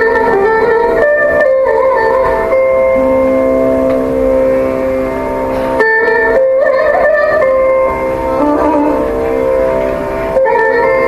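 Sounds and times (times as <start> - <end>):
electric mandolins sustained notes: 0.0 - 11.0.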